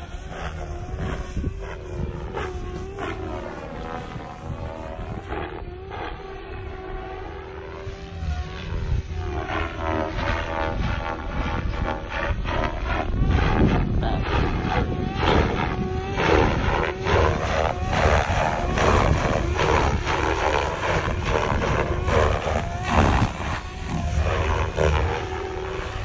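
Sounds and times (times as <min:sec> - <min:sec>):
rc helicopter rotor whining: 0:00.0 - 0:26.0.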